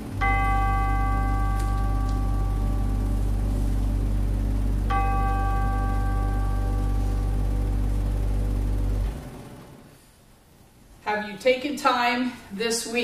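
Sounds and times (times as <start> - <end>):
bell-like chime ringing: 0.0 - 8.5
steady low hum: 0.0 - 13.0.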